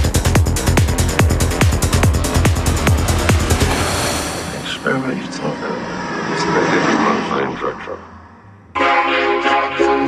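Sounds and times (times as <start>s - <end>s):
steady rushing noise: 0.1s - 8.6s.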